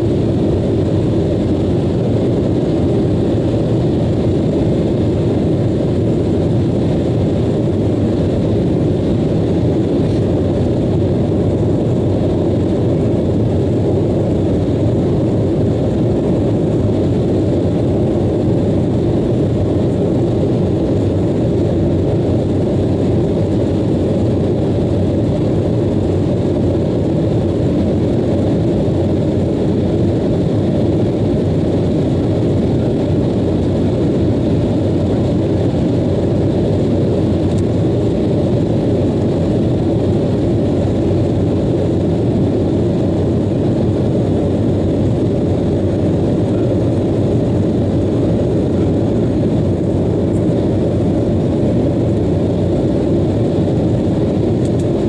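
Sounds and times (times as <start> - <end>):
airliner cabin rumble: 0.0 - 55.0.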